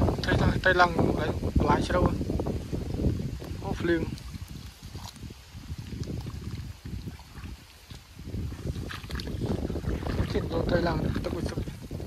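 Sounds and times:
wind buffeting microphone: 0:00.0 - 0:12.0
feet splashing through water: 0:03.4 - 0:12.0.

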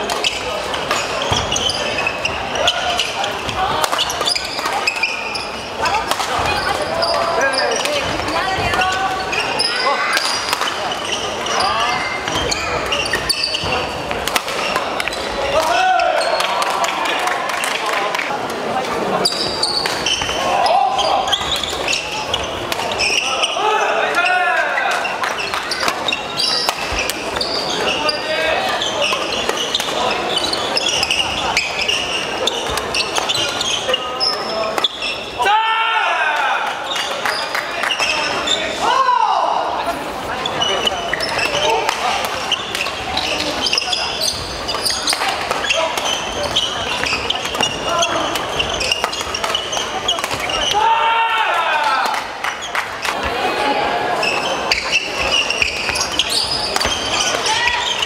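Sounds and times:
shoes squeaking on court floor: 0:00.0 - 0:35.4, 0:36.8 - 0:38.8, 0:39.8 - 0:50.9, 0:52.0 - 0:58.0
spectators talking and calling: 0:00.0 - 0:58.0
racket hitting shuttlecock: 0:13.6 - 0:15.7, 0:25.2 - 0:27.5, 0:55.8 - 0:57.5.

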